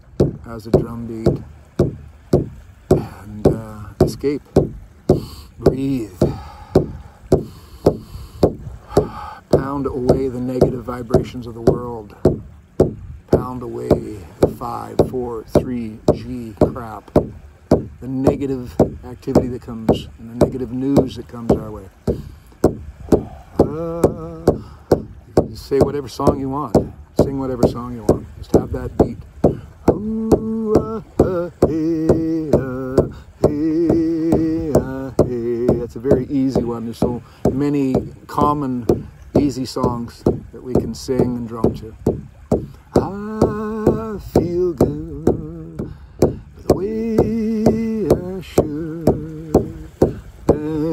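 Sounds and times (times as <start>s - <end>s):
frame drum thuds: 0.0s - 50.9s.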